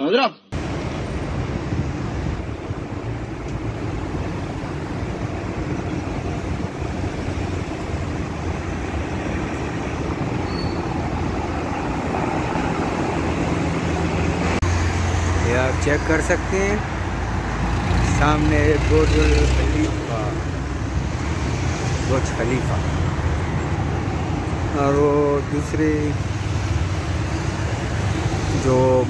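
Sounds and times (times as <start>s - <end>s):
street traffic rumble: 0.5s - 29.0s.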